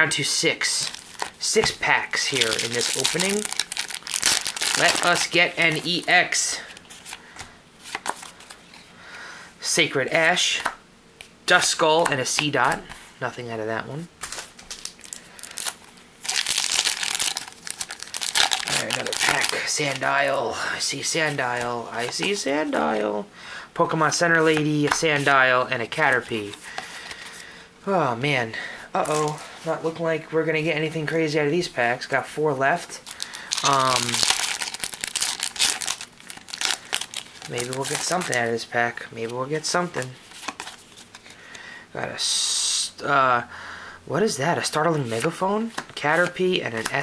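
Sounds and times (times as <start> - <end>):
foil wrapper crinkling: 0.6 - 7.2, 14.2 - 20.3, 33.0 - 39.0.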